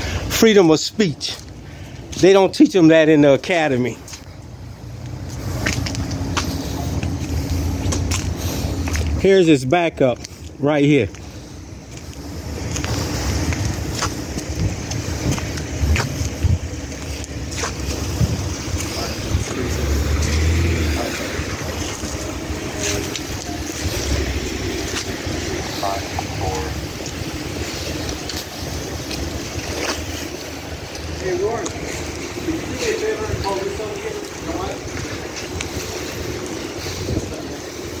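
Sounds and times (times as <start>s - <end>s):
car engines and traffic: 0.0s - 38.0s
faint voices: 0.0s - 38.0s
wind buffeting microphone: 10.5s - 38.0s.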